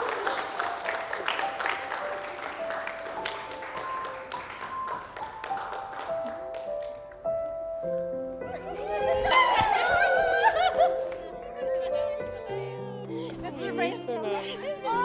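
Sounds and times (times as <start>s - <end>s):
small group applauding: 0.0s - 7.3s, 9.1s - 12.4s.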